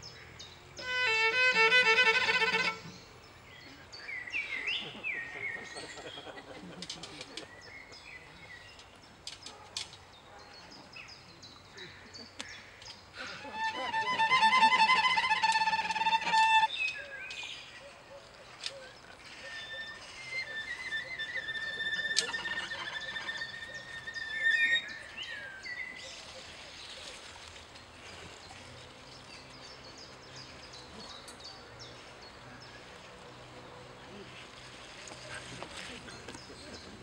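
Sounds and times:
cello bowed note: 0:00.8 - 0:03.0, 0:13.4 - 0:16.7.

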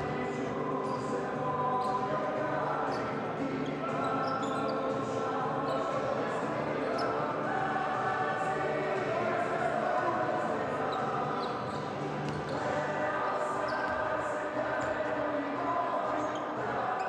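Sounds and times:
crowd chanting: 0:00.0 - 0:17.0
shoes squeaking on court: 0:00.8 - 0:06.0, 0:06.8 - 0:07.3, 0:10.8 - 0:17.0.

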